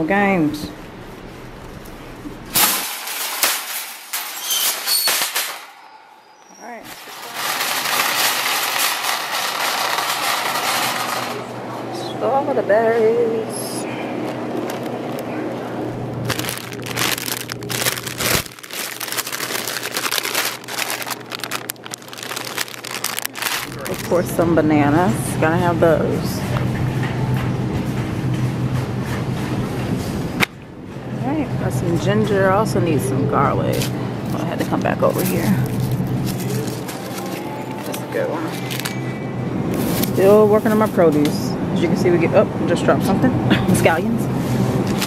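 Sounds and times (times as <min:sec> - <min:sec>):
loud metal clatters: 0:02.5 - 0:05.8, 0:06.9 - 0:11.5
wire shopping carts rattling: 0:02.5 - 0:05.8, 0:06.8 - 0:11.5, 0:16.2 - 0:26.5, 0:34.3 - 0:41.6
plastic bags crinkling: 0:06.8 - 0:11.4, 0:14.2 - 0:15.4, 0:16.1 - 0:25.2, 0:33.8 - 0:39.1, 0:39.7 - 0:41.0.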